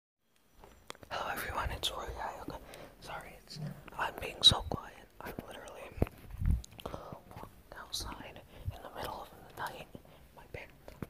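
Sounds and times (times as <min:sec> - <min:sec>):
person whispering: 0:01.1 - 0:11.0.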